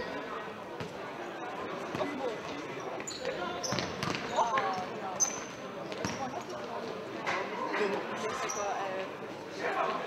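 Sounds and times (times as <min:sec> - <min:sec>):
spectator chatter: 0:00.0 - 0:10.0
shoes squeaking on floor: 0:03.0 - 0:06.3, 0:08.3 - 0:08.8
ball kicked and thudding on court: 0:03.7 - 0:04.3.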